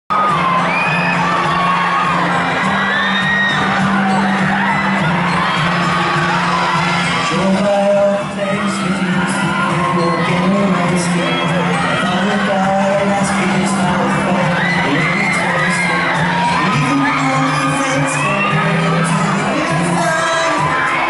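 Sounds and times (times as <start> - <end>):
crowd screaming and cheering: 0.1 - 21.0.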